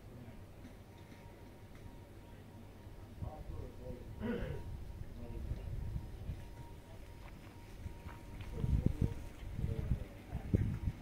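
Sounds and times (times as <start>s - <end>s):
faint voices: 0.0s - 11.0s
footsteps on stony path: 6.4s - 11.0s.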